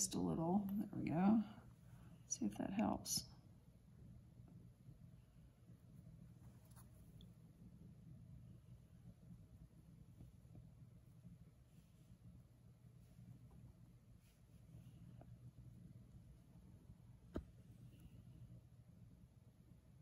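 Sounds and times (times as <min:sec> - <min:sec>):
steady low hum: 0:00.0 - 0:20.0.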